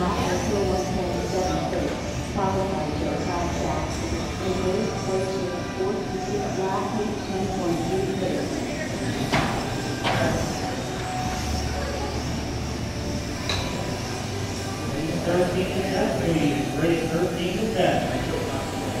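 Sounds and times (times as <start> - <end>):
electric motors whining: 0.0 - 19.0.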